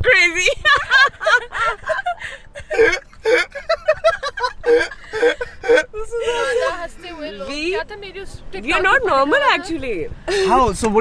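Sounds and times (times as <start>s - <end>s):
woman laughing: 0.4s - 6.9s.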